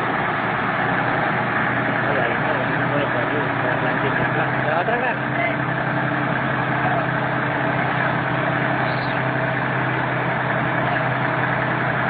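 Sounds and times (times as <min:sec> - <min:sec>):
diesel engine idling: 0:00.0 - 0:12.0.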